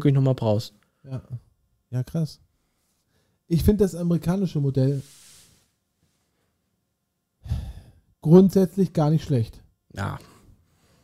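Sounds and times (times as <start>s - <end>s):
man sighing into microphone: 7.4s - 8.0s.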